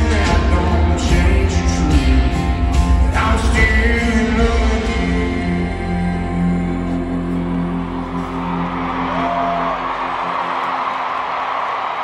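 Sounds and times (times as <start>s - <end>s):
stadium crowd cheering: 7.2s - 12.0s.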